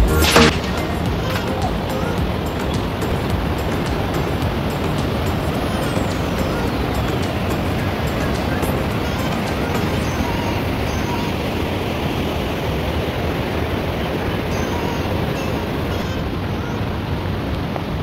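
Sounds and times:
music: 0:00.0 - 0:11.5
river rushing over rocks: 0:00.0 - 0:18.0.

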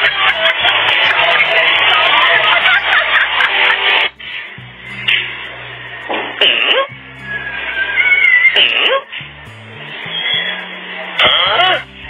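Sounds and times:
background music: 0:00.0 - 0:12.0
steady low bass line: 0:00.0 - 0:12.0.

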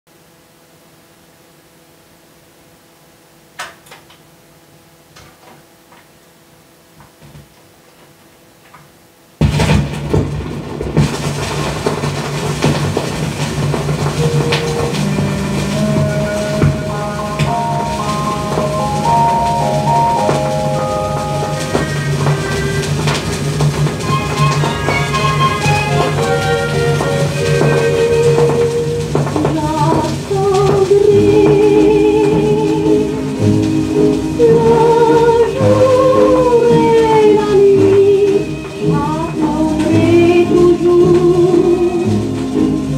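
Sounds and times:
record surface crackle and hiss: 0:00.1 - 0:42.9
dance orchestra music: 0:14.0 - 0:30.2.

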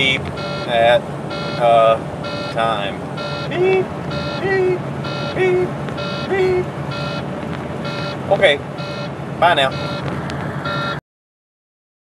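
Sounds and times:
dashboard warning alarm beep: 0:00.0 - 0:11.0
truck engine humming: 0:00.0 - 0:11.0.

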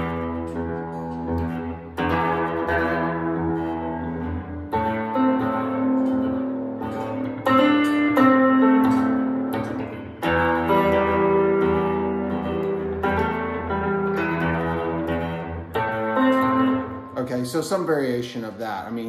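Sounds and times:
fingerstyle electric guitar: 0:00.0 - 0:19.0.

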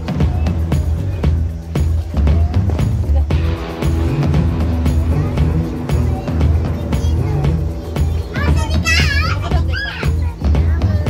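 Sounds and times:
music with bass beat: 0:00.0 - 0:11.0
child squealing: 0:08.3 - 0:10.4.

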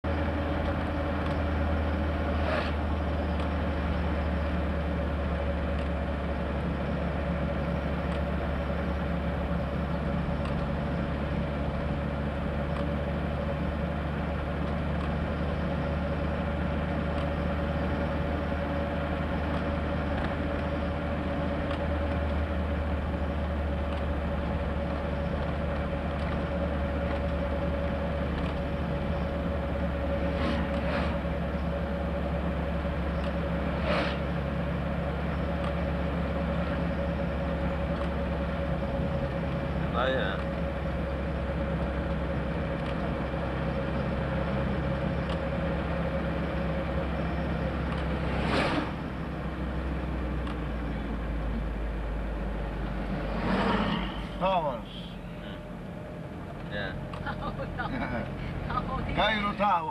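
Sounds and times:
low rumble with constant hum: 0:00.0 - 0:59.9.

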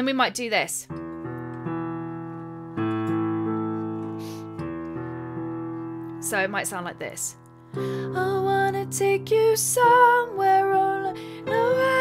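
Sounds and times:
piano low arpeggio notes: 0:00.9 - 0:12.0.

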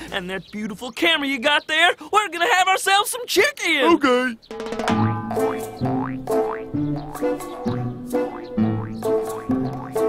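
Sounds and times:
rising sliding boing note: 0:04.5 - 0:07.2
bouncy cartoon music: 0:04.5 - 0:10.0
low bass note: 0:04.9 - 0:07.1.

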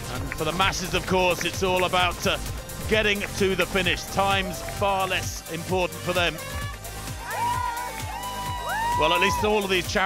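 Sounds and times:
music with low beat: 0:00.0 - 0:10.0.

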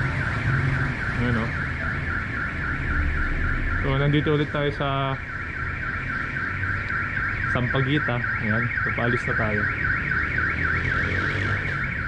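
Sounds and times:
car alarm siren warbling: 0:00.0 - 0:12.0.

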